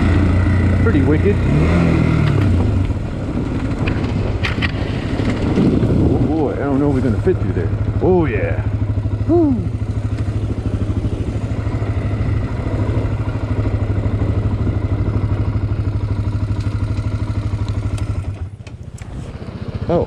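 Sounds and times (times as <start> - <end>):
quad bike engine idling: 0.0 - 20.0.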